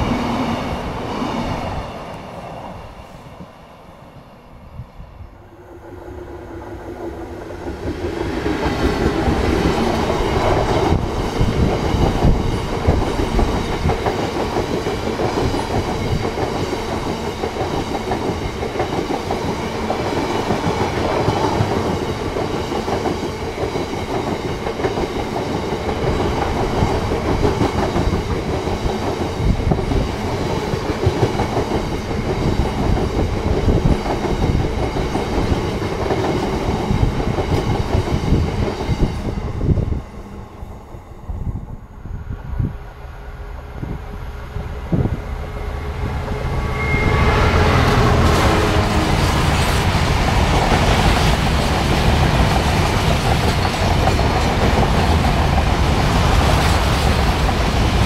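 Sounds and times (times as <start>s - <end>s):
diesel locomotive passing: 0.0s - 58.0s
train wheels rattling over rails: 5.6s - 40.2s, 47.4s - 58.0s.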